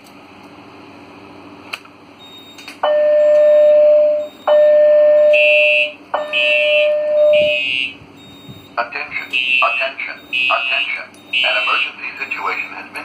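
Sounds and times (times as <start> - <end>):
long steady alarm tones: 2.8 - 12.8.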